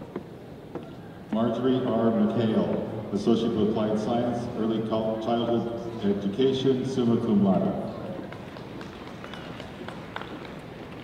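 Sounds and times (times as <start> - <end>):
large hall audience background: 0.0 - 11.0.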